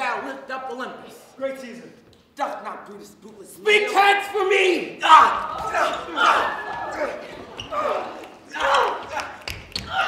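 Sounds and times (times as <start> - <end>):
people shouting and grunting: 3.7 - 10.0.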